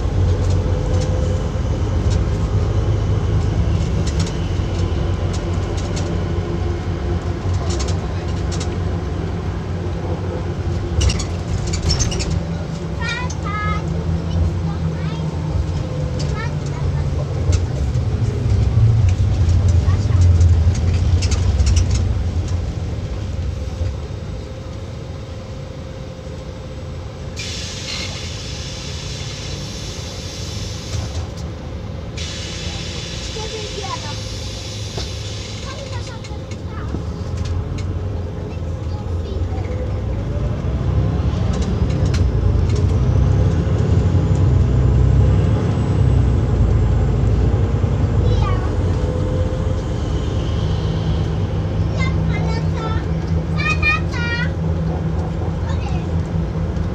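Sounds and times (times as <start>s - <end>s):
low vehicle rumble: 0.0s - 56.9s.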